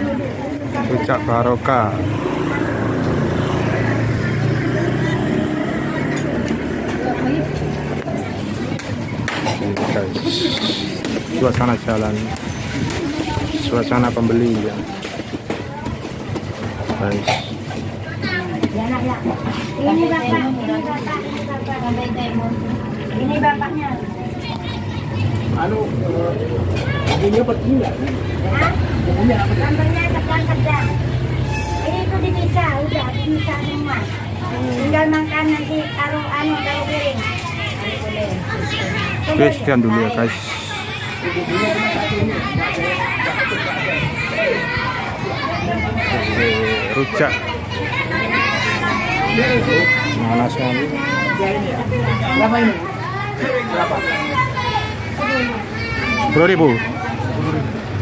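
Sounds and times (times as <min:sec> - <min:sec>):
people talking: 0:00.0 - 0:58.0.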